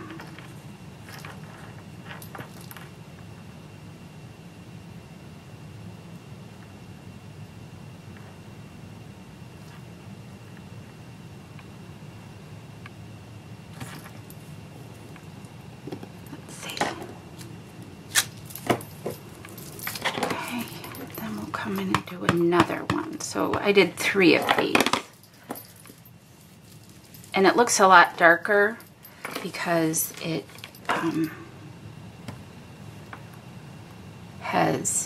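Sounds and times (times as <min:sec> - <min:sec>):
low room hum: 0:00.0 - 0:35.0.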